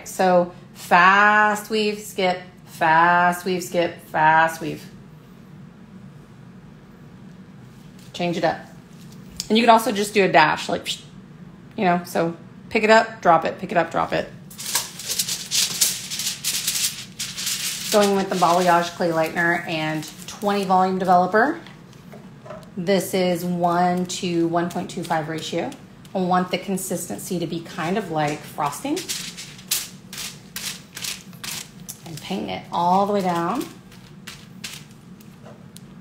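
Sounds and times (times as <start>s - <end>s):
low steady hum: 0.0s - 36.0s
foil crinkling and rustling: 14.5s - 21.4s, 27.7s - 35.4s.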